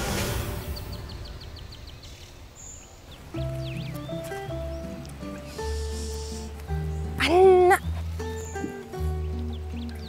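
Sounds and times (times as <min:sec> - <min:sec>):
small birds chirping: 0:00.4 - 0:10.0
soft background music: 0:03.1 - 0:10.0.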